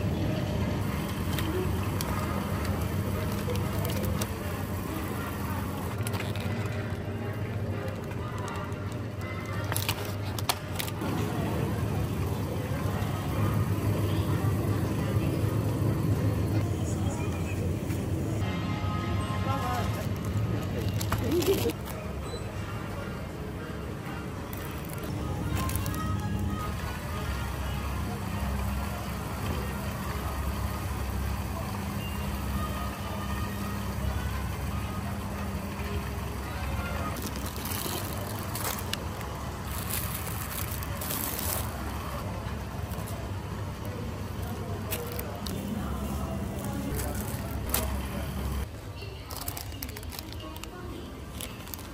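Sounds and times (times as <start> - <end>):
shopping cart rolling: 0.8 - 18.4, 19.3 - 22.6, 24.5 - 48.7.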